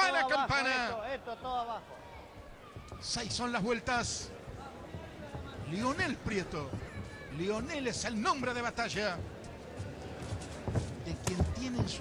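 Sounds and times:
man announcing: 0.0 - 1.8.

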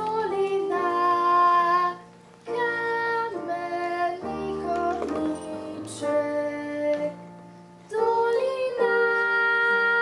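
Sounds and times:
girl singing into microphone: 0.0 - 10.0.

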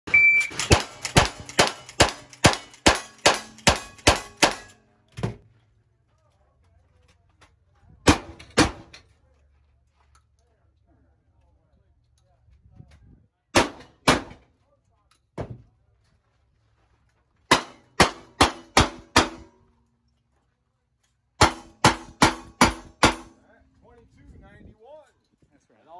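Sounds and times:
short high beep: 0.1 - 0.6
steel targets ringing: 0.4 - 4.9
gunshots: 0.5 - 4.7, 8.1 - 8.9, 13.6 - 14.4, 17.5 - 19.5, 21.4 - 23.3.

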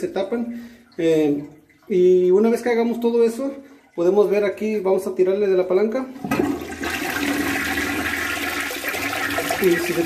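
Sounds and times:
toilet flushing weakly: 6.1 - 10.0.

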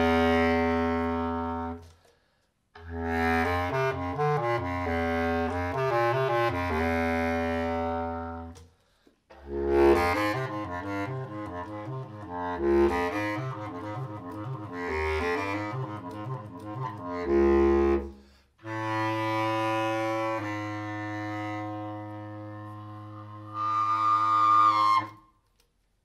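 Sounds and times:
bass clarinet improvising: 0.0 - 2.1, 2.8 - 25.4.

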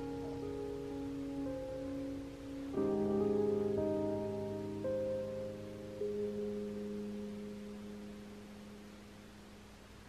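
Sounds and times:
piano chord: 0.0 - 9.7.

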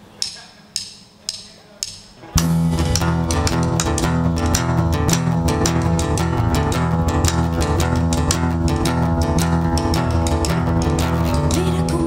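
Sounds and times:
drumsticks clicked together: 0.2 - 2.2.

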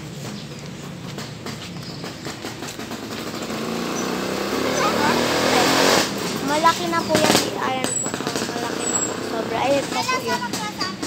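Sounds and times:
motor vehicle engine approaching: 0.0 - 11.0.

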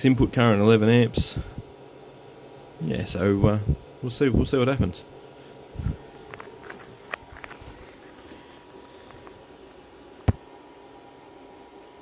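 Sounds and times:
welder electrical buzz: 0.0 - 12.0.

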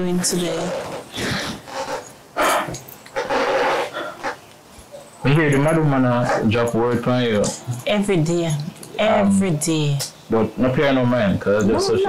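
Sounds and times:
breathy exhales: 2.4 - 4.4.

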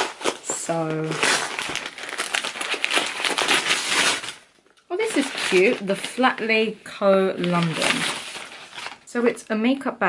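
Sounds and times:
wrapping paper crinkling and tearing: 0.0 - 9.2.

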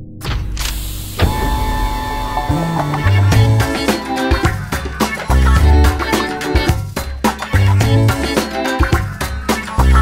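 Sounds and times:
steady music tones: 1.2 - 10.0.

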